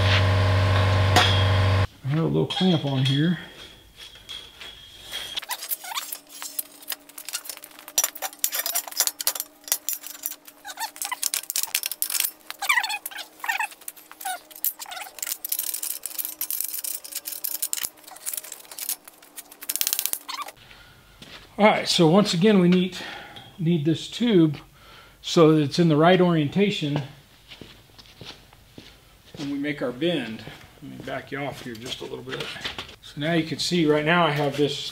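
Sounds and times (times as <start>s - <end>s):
metal tubing clinking: 2.5s - 20.6s
short squeaky chirps: 4.6s - 9.0s, 10.5s - 20.6s.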